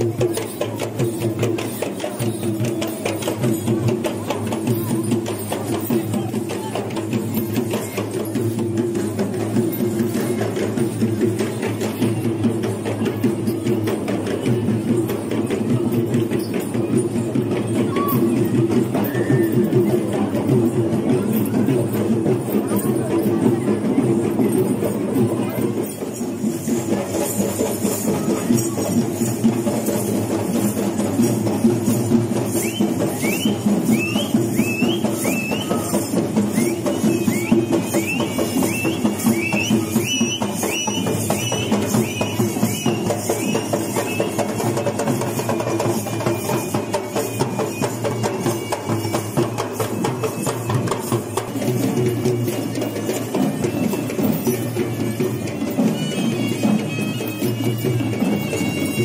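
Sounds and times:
hand drums beating fast rhythm: 0.0s - 59.0s.

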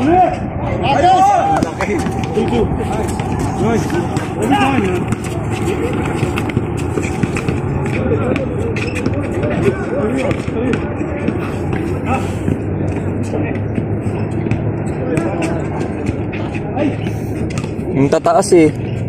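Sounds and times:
people calling out and shouting: 0.0s - 17.4s
steady low hum: 0.0s - 18.0s.

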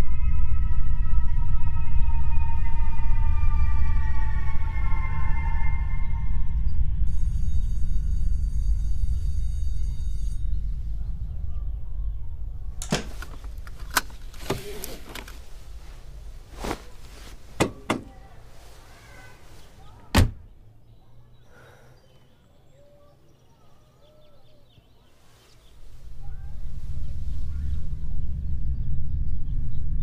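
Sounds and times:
eerie falling tones: 0.0s - 13.6s
low rumbling drone: 0.0s - 17.6s, 25.6s - 30.0s
thin high tone: 7.1s - 11.9s
sharp clicks and knocks: 12.8s - 15.4s.

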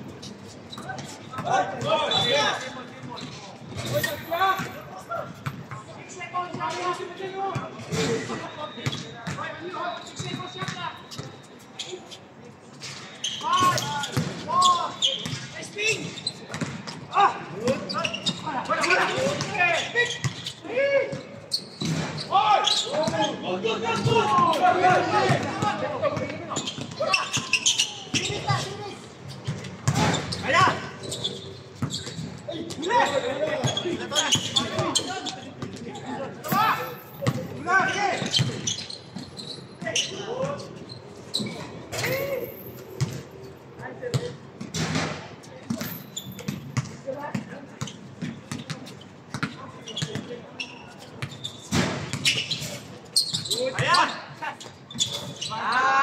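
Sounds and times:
basketball bouncing on court: 5.4s - 5.9s, 8.8s - 9.4s, 16.5s - 17.0s, 36.5s - 37.6s, 45.7s - 50.3s
players calling out: 13.2s - 43.2s.

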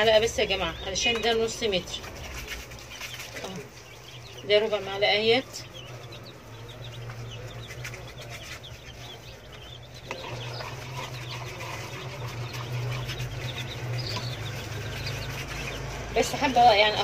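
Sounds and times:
chicks peeping: 0.0s - 17.0s
steady low hum: 0.0s - 17.0s.

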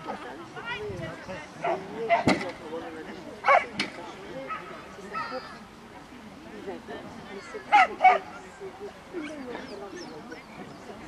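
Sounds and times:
dog barking: 3.4s - 3.7s, 7.7s - 8.3s.

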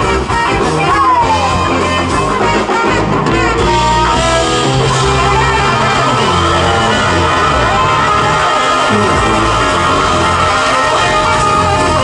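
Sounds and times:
drum kit: 0.0s - 12.0s
electric guitar: 0.0s - 12.0s
sousaphone bass notes: 0.0s - 12.0s.

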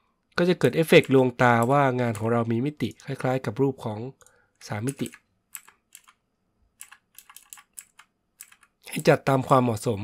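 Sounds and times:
keyboard and mouse clicks: 0.9s - 2.3s, 4.2s - 6.2s, 6.8s - 9.2s.

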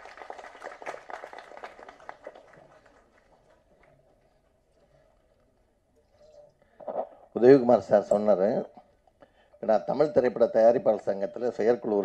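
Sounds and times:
audience applause: 0.0s - 4.3s.

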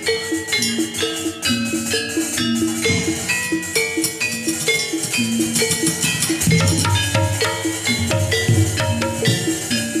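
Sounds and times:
gamelan music: 0.0s - 10.0s
gong-chimes and metallophones ringing: 0.0s - 10.0s.

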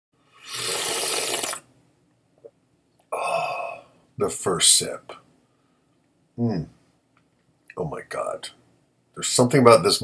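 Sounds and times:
person slurping coffee: 0.4s - 1.7s.

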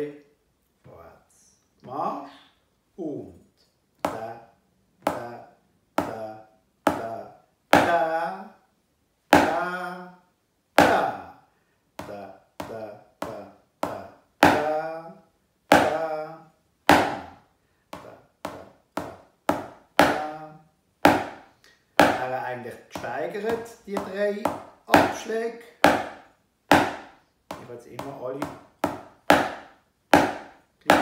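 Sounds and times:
drumsticks on practice pad: 23.0s - 31.0s.

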